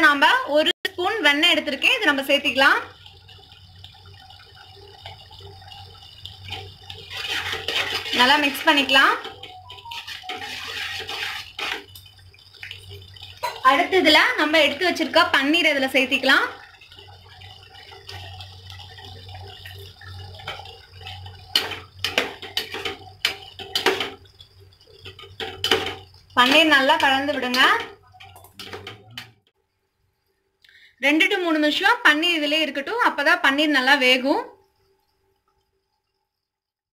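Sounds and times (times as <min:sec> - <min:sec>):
spatula stirring thick gravy: 0:06.5 - 0:08.7, 0:10.0 - 0:12.0
food sliding into liquid gravy: 0:10.0 - 0:12.0.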